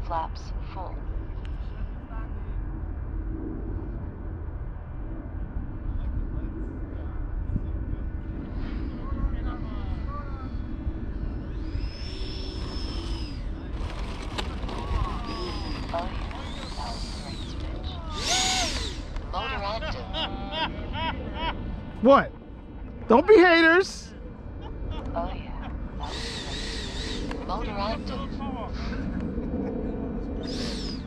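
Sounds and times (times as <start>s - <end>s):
wind rumbling on microphone: 0.0s - 31.0s
model jet fan whine: 1.1s - 31.0s
people talking and laughing: 13.6s - 30.8s.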